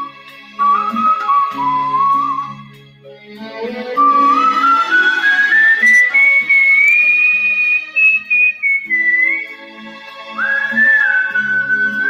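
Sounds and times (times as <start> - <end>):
person whistling a melody: 0.0 - 2.8, 4.0 - 9.6, 10.4 - 12.0
instrumental backing music: 0.0 - 12.0.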